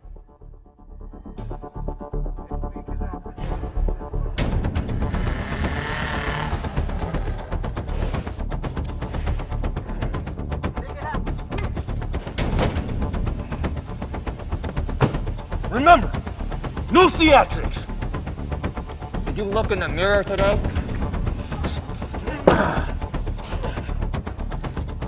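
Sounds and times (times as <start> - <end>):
action film music with percussive hits: 0.0 - 25.0.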